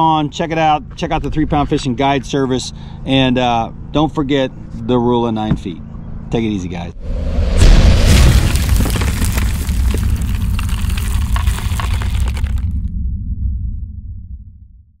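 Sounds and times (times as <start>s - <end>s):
deep boom: 7.0s - 15.0s
low rumble: 7.0s - 15.0s
crackling shattering debris: 8.1s - 12.9s.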